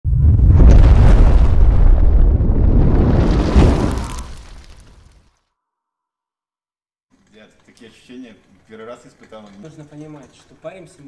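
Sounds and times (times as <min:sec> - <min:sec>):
deep rumbling boom: 0:00.0 - 0:05.1.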